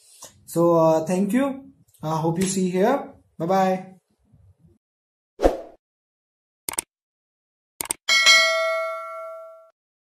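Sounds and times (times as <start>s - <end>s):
notification bell ding: 8.1s - 9.8s.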